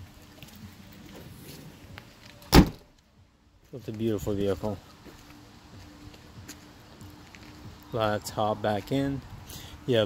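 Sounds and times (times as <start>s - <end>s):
car liftgate thumping shut: 2.5s - 2.9s.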